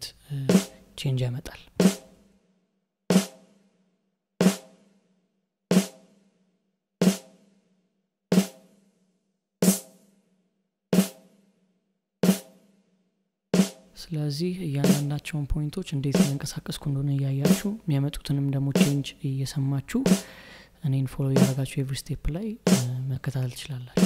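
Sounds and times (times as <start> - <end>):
snare drum hits: 3.1 - 3.4, 8.4 - 8.6, 13.6 - 13.8.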